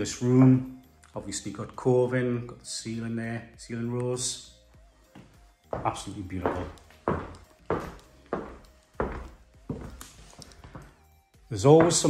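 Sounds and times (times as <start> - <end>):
footsteps on wooden floor: 5.0 - 11.1, 11.7 - 12.0.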